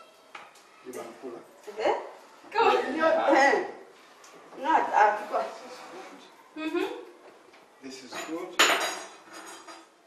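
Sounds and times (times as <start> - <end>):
metal utensils clinking: 8.0 - 10.0.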